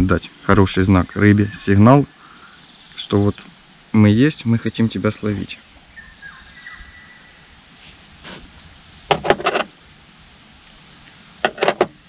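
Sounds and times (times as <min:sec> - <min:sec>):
faint rustling of mesh: 0:07.7 - 0:09.8.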